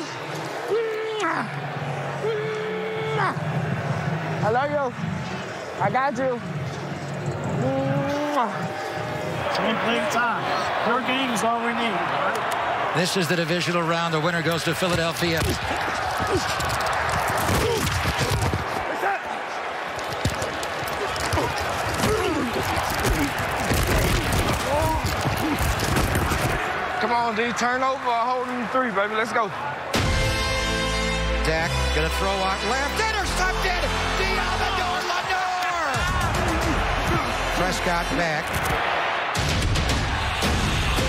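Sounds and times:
players shouting: 0.0 - 41.0
stadium crowd noise: 0.0 - 41.0
pads and helmets impacts: 14.8 - 19.0, 20.0 - 26.7.

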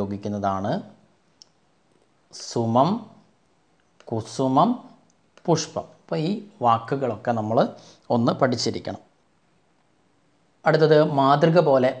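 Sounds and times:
person speaking: 0.0 - 9.4, 10.4 - 12.0.

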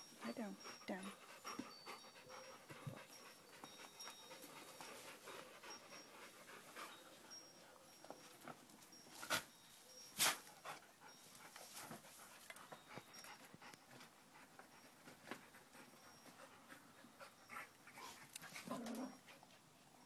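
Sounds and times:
dog panting: 0.0 - 8.5, 10.3 - 19.8.

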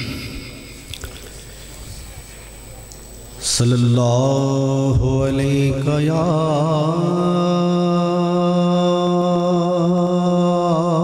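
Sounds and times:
man chanting a held note: 3.4 - 11.0.

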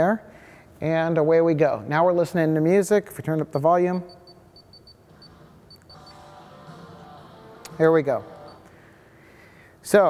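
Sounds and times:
short high electronic beeps: 4.1 - 6.2, 8.4 - 8.7
faint music through car speakers: 5.1 - 8.8.

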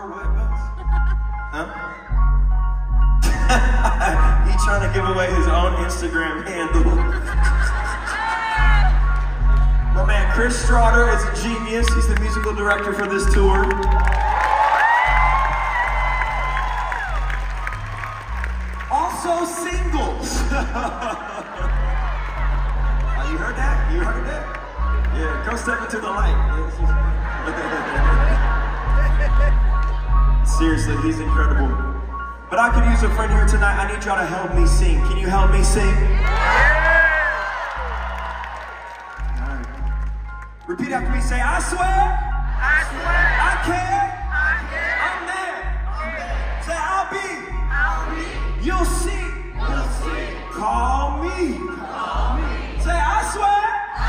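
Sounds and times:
deep sustained bass notes: 0.2 - 14.0, 21.6 - 36.9
faint crowd cheering: 7.8 - 31.8, 35.8 - 40.4
live band music: 15.2 - 37.5, 38.1 - 54.0.

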